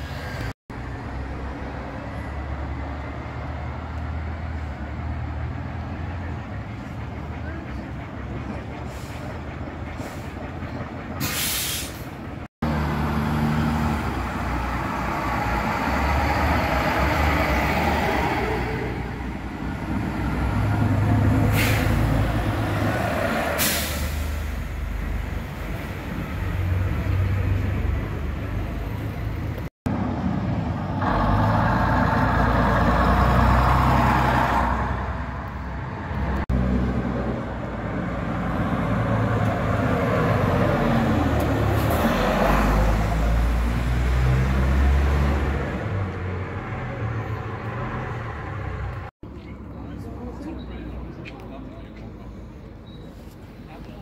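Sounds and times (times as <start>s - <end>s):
diesel bus engines: 0.0s - 54.0s
air brakes hissing: 8.8s - 10.5s, 11.2s - 12.2s, 21.4s - 22.2s, 23.4s - 24.7s.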